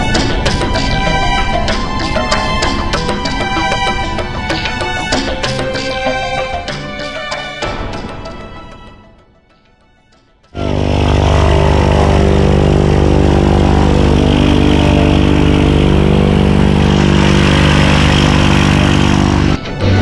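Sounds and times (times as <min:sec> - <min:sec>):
propeller engine droning: 0:00.0 - 0:08.4, 0:10.6 - 0:20.0.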